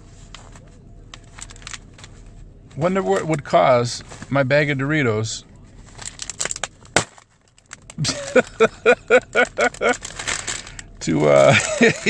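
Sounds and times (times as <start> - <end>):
plastic snack bag crinkling: 0.2 - 3.4, 5.7 - 12.0
bag bursting with a pop: 6.9 - 7.3
man laughing: 8.0 - 10.2, 11.3 - 12.0.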